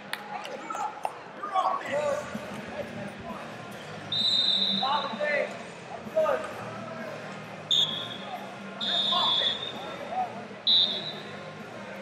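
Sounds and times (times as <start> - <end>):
whistle blasts: 4.1 - 5.2, 7.7 - 8.2, 8.8 - 9.8, 10.7 - 11.3.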